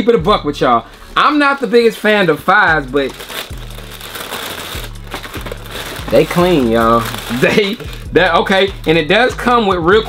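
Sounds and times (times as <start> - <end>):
background music with sliding bass: 0.0 - 10.0
paper crinkling: 0.9 - 8.2.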